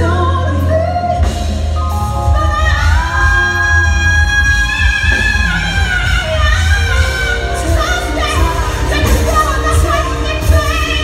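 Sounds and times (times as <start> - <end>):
band with steady bass: 0.0 - 11.0
woman singing: 0.0 - 11.0.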